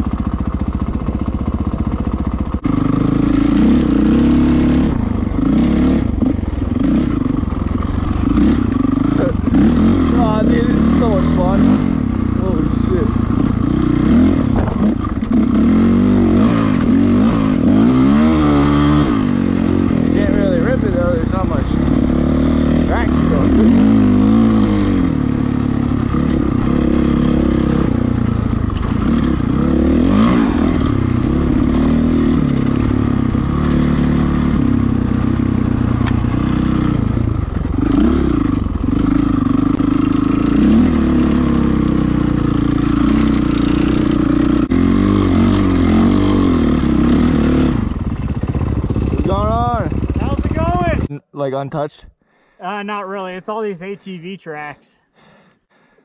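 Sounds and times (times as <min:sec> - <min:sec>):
dirt bike engine revving: 0:00.0 - 0:51.1.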